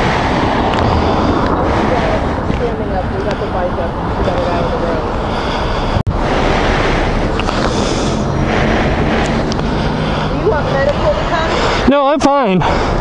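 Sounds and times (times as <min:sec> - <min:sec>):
man breathing heavily: 0:00.0 - 0:02.4, 0:03.0 - 0:13.0
microphone wind rush: 0:00.0 - 0:13.0
passing traffic: 0:00.0 - 0:13.0.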